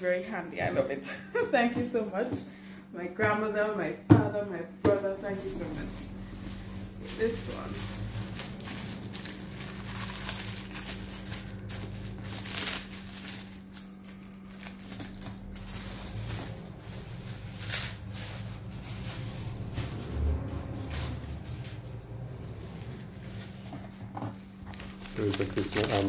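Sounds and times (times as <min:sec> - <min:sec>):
gift wrapping crinkling: 0:05.2 - 0:20.8, 0:21.4 - 0:26.0.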